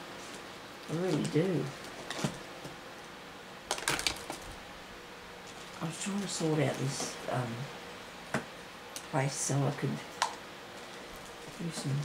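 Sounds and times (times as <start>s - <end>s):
small hard items clattering: 3.7s - 4.5s.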